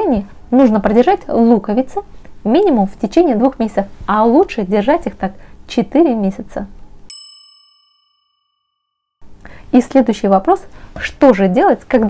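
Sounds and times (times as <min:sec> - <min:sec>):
metallic bell ding: 0:07.1 - 0:08.7.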